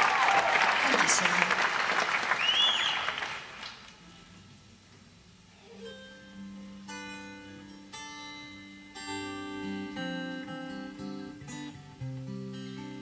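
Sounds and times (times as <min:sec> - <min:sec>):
applause: 0:00.0 - 0:04.0
acoustic guitar chords: 0:04.0 - 0:13.0.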